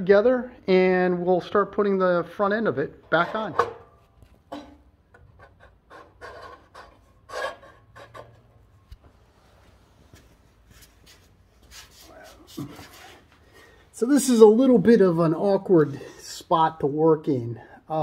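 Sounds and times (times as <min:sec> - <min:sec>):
metal shaft scraping: 0:05.4 - 0:08.5
man breathing: 0:12.9 - 0:14.0.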